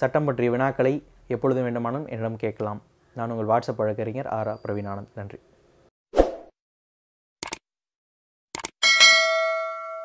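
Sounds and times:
quick clicks: 7.4 - 7.6, 8.6 - 8.8
notification bell ding: 8.8 - 10.0.

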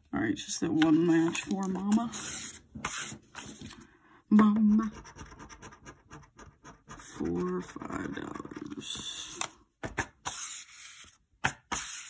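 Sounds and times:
scratching a lottery ticket: 4.9 - 9.3.

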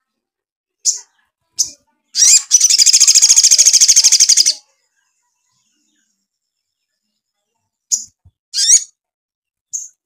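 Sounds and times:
sunbird singing high trill: 2.2 - 4.6.

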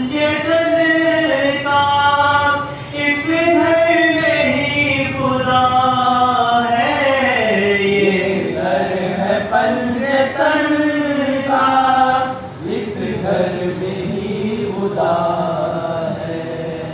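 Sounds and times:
man singing unaccompanied: 0.0 - 16.9.

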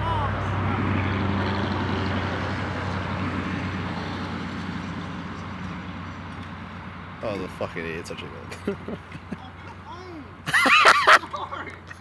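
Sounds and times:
engine running with low hum: 0.0 - 9.6.

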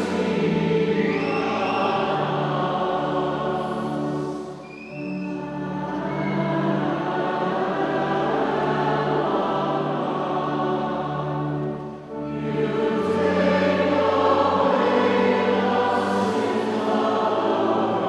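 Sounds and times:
choir singing liturgical music: 0.0 - 18.0
sustained accompaniment chords: 0.0 - 18.0.

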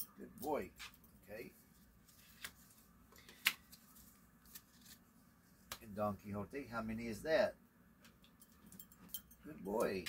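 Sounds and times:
paper rustling: 1.6 - 5.8
sharp paper snap: 3.2 - 3.8.

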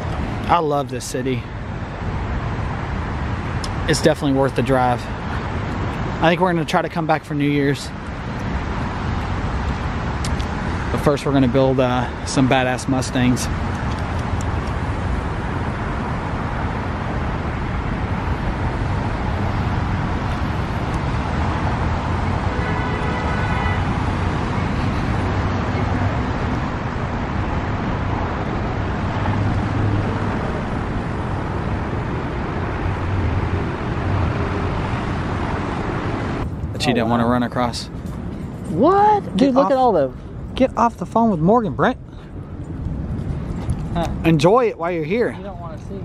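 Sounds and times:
city traffic rumble: 0.0 - 46.0.

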